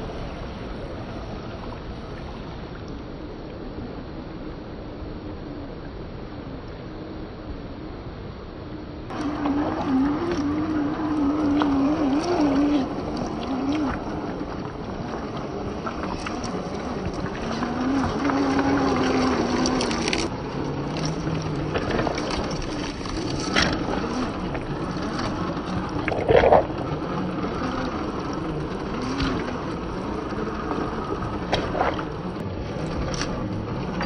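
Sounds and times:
water splashing: 0:09.1 - 0:34.0.

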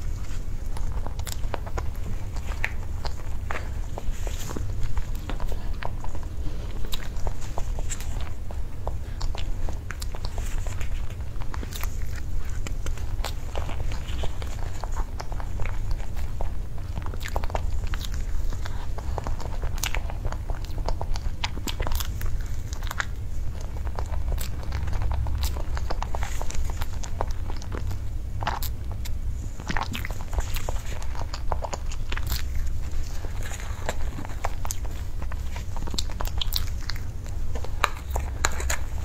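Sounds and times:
mouth sounds of eating: 0:00.0 - 0:39.0
steady low hum: 0:00.0 - 0:39.0
wet chewing and lip-smacking: 0:00.0 - 0:39.0.

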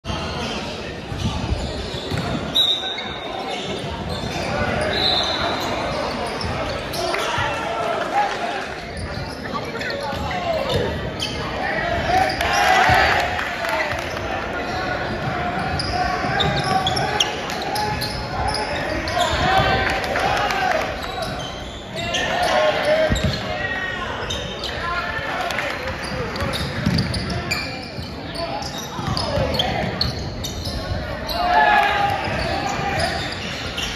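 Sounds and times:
sneaker squeaks: 0:00.1 - 0:07.6, 0:08.8 - 0:13.2, 0:13.9 - 0:19.8, 0:20.6 - 0:25.1, 0:25.7 - 0:33.9
basketball bouncing on court: 0:01.1 - 0:02.5, 0:23.1 - 0:23.5, 0:26.0 - 0:27.4
players shouting: 0:11.5 - 0:26.5, 0:31.0 - 0:33.9.

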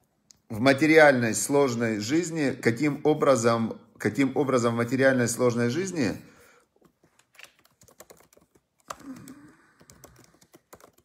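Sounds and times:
typing on computer keyboard: 0:07.1 - 0:11.0.

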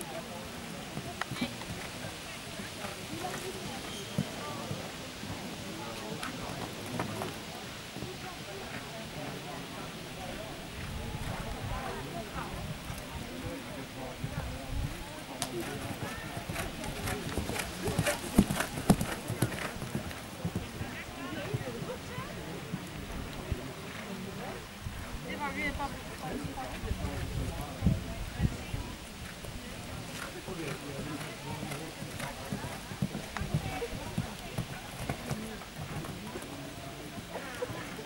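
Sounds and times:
hoofbeats on sand: 0:14.3 - 0:22.9.

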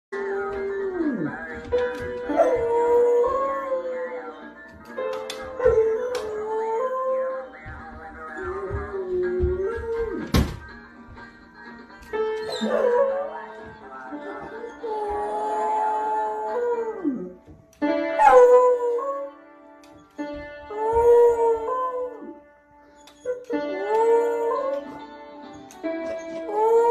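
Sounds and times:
piano notes: 0:00.1 - 0:26.9
dog howling: 0:02.3 - 0:04.4, 0:12.5 - 0:13.4, 0:14.3 - 0:17.4, 0:18.2 - 0:19.4, 0:26.5 - 0:26.9
piano key clusters: 0:04.7 - 0:06.4.

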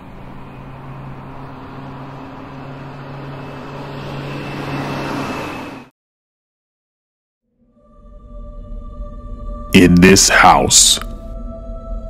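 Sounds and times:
low engine-like hum: 0:00.0 - 0:05.9
street traffic: 0:00.0 - 0:05.9.

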